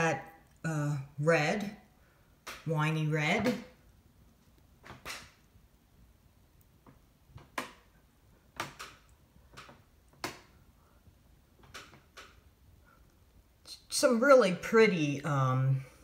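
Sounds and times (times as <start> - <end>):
faint clicks and soft knocks: 3.5 - 13.7.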